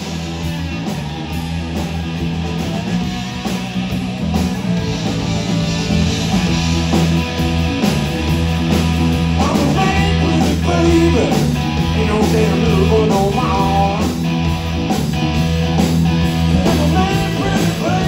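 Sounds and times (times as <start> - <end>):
bass guitar: 0.0 - 18.0
drum kit beat: 0.0 - 18.0
electric guitar: 0.0 - 18.0.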